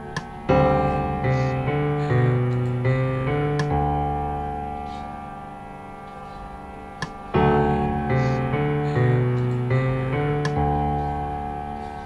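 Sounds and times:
held keyboard chord: 0.0 - 12.0.

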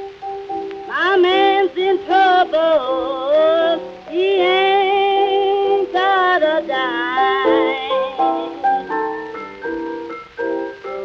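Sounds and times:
piano accompaniment: 0.0 - 11.0
woman singing blues: 0.9 - 9.1.

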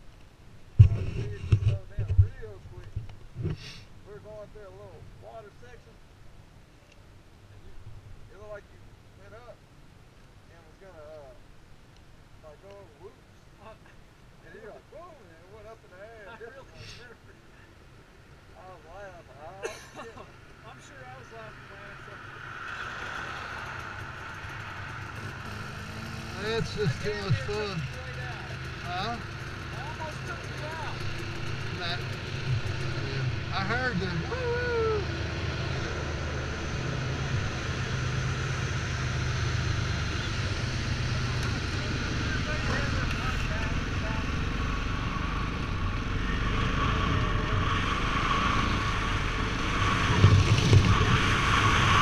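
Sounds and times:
low thumps on microphone: 0.8 - 3.6
short hiss: 3.4 - 3.9
dirt bike riding up: 19.6 - 52.0
dirt bike engine idling: 23.3 - 34.4, 39.2 - 46.3.

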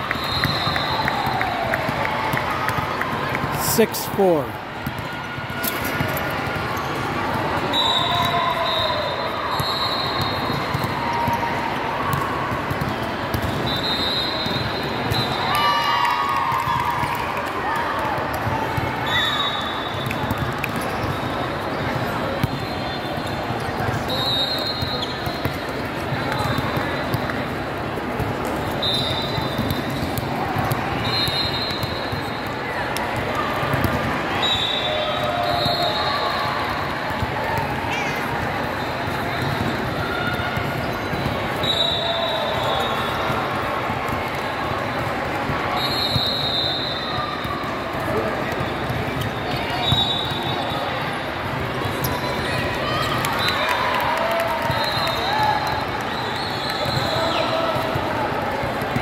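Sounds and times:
din of many voices: 3.4 - 4.7
short high referee whistle blasts: 7.7 - 10.5, 13.6 - 15.5, 41.6 - 43.2, 45.8 - 47.2
volleyballs being hit and bounced: 29.4 - 34.3, 57.7 - 59.0.

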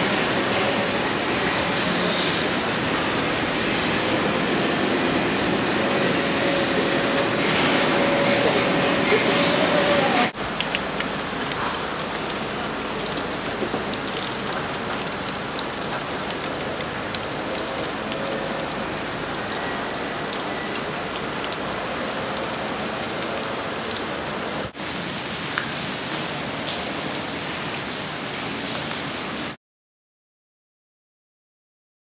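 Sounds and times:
rain on wet concrete: 10.0 - 29.6.

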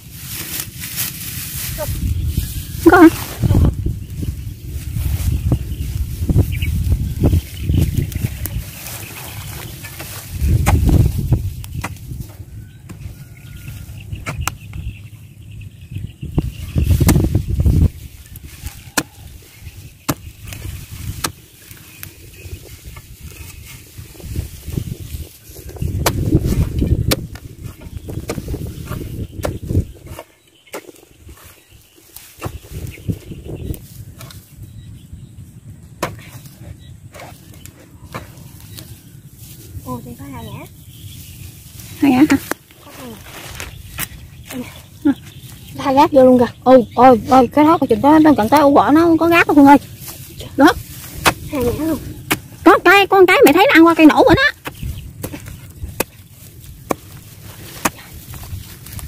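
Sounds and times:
spade chopping into soil: 51.2 - 51.5, 56.8 - 58.2.

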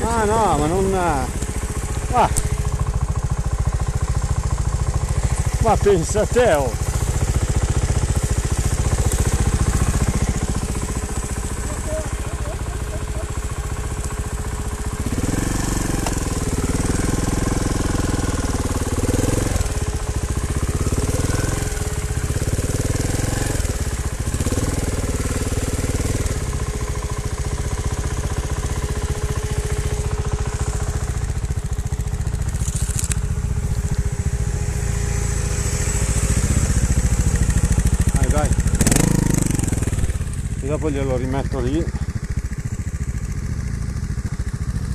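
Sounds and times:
motorcycle engine revving: 0.0 - 44.9.

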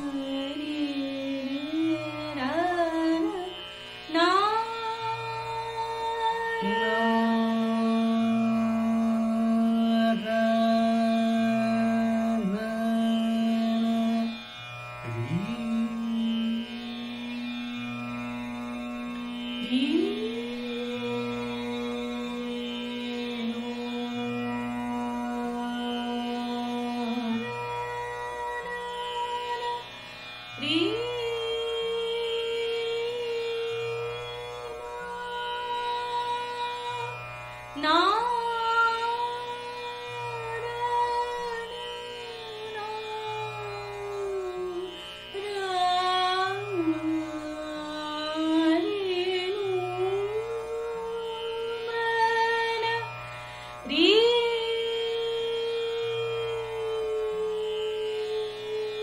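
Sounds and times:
person singing long held notes: 0.0 - 14.4, 15.0 - 17.8, 19.5 - 29.9, 30.5 - 37.2, 37.8 - 53.2, 53.8 - 59.0
plucked string drone: 0.0 - 29.9, 30.5 - 59.0.

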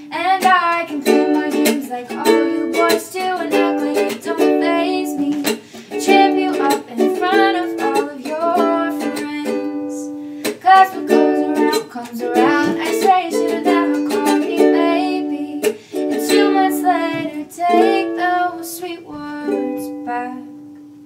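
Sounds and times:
girl singing: 0.0 - 20.7
ukulele strumming: 0.0 - 21.0.

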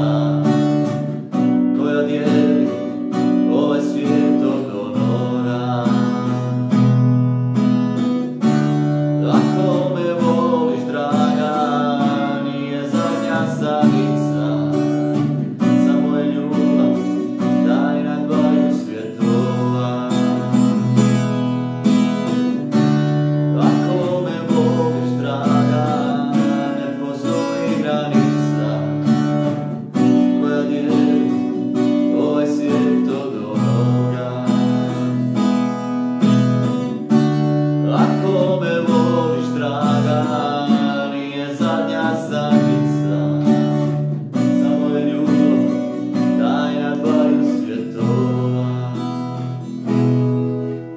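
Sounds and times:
man singing: 0.0 - 7.0, 8.2 - 50.9
acoustic guitar strumming: 0.0 - 50.9.

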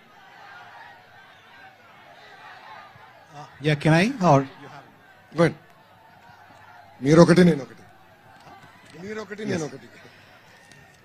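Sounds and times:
man speaking over public address: 3.3 - 5.6, 7.0 - 7.8, 9.0 - 10.1.

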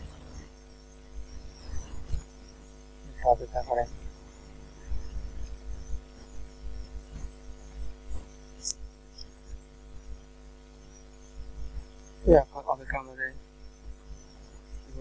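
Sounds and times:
electrical mains hum: 0.0 - 15.0.

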